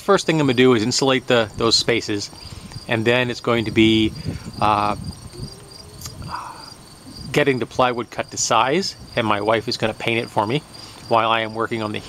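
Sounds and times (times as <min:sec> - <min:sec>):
insects chirping: 0:00.0 - 0:12.0
insect trill: 0:00.1 - 0:12.0.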